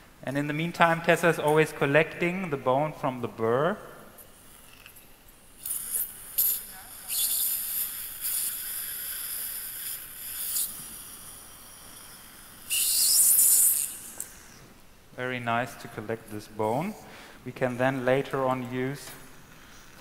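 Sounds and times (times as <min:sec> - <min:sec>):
suction tube hissing: 0:04.4 - 0:14.6
high-pitched surgical drill: 0:04.5 - 0:14.6.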